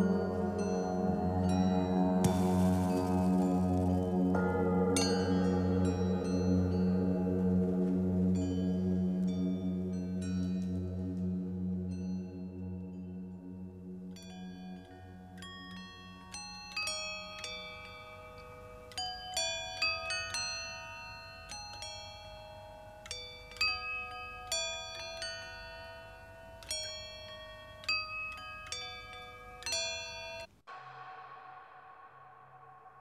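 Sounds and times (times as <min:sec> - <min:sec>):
low hum: 0:00.0 - 0:15.5, 0:30.7 - 0:33.0
metallic pitched percussion notes: 0:00.0 - 0:18.5, 0:29.6 - 0:33.0.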